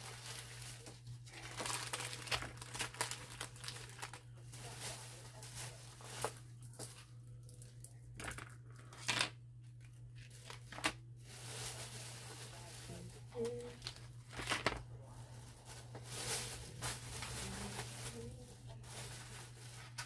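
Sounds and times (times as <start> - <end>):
bags and packaging crinkling: 0.0 - 20.0.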